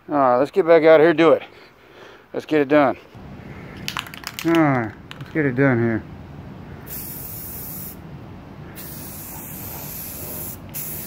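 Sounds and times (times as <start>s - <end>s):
aerosol can spraying hiss: 6.9s - 8.0s, 8.8s - 11.0s.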